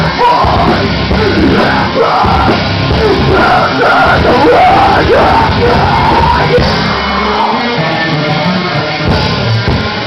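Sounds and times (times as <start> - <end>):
vocalist yelling: 0.0 - 6.7
heavy rock band playing: 0.0 - 10.0.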